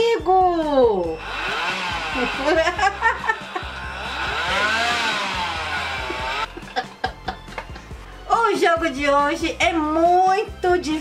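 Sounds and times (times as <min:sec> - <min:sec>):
motorcycle engine revving: 0:01.1 - 0:06.6.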